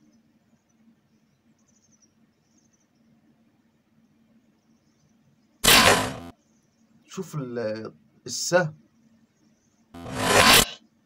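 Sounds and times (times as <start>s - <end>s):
faint outdoor background: 0.0s - 11.0s
bow shot: 5.6s - 6.2s.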